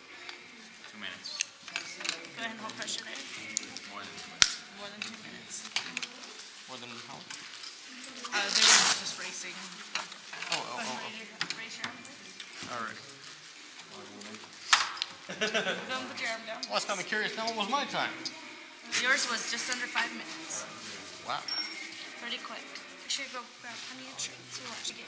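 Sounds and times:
indistinct talk: 0.0 - 25.0.

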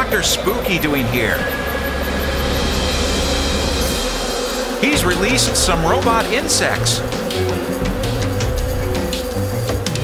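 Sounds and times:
mechanical buzzing hum: 0.0 - 10.0
hiss: 0.8 - 10.0.

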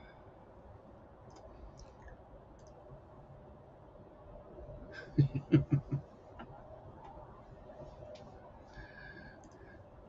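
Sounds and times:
computer mouse clicks: 1.3 - 2.8, 9.4 - 9.6.

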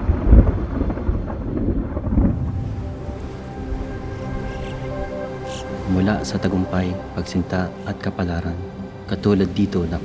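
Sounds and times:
thunder rumbling: 0.0 - 8.1
background music: 1.9 - 10.0.

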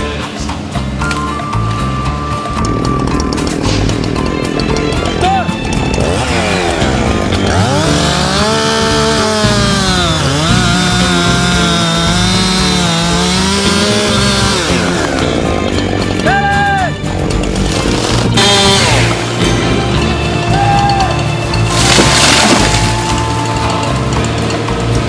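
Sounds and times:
chainsaw revving: 1.9 - 16.3, 16.9 - 25.0.

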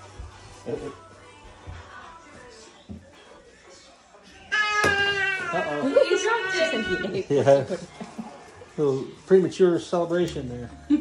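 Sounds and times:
toddler squealing: 4.5 - 7.2.

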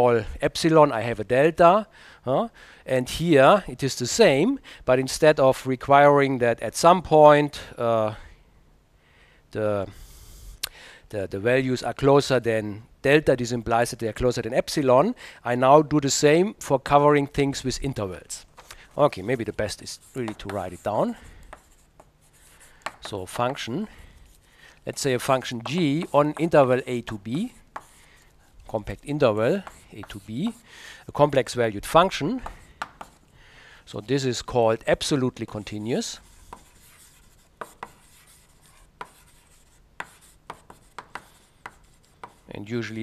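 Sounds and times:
chalk scratching on blackboard: 18.9 - 30.6, 32.0 - 33.3, 35.0 - 42.5
chalk tapping on blackboard: 19.3 - 28.3, 29.5 - 30.6, 32.3 - 33.3, 35.4 - 42.5.

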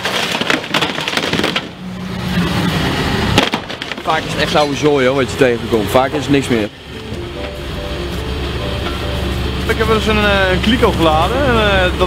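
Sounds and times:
debris clattering in hopper: 0.0 - 5.4
engine and hydraulics hum: 0.0 - 12.0.

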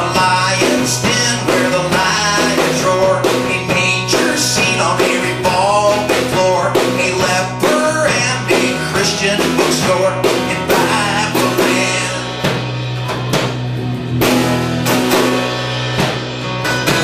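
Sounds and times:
acoustic guitar strumming: 0.0 - 17.0
electric guitar: 0.0 - 17.0.

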